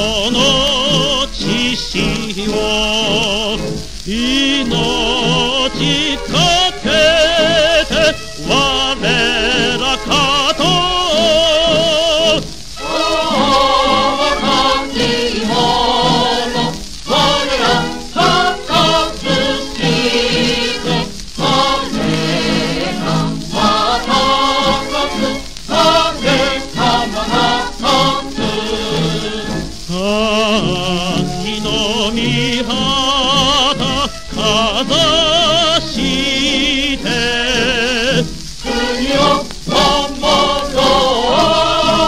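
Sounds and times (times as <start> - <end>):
chorus singing over music: 0.0 - 42.0.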